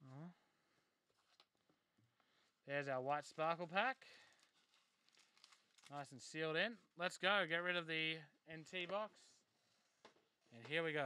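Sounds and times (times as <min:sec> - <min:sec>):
wrapper crinkling and rustling: 0:03.2 - 0:06.2.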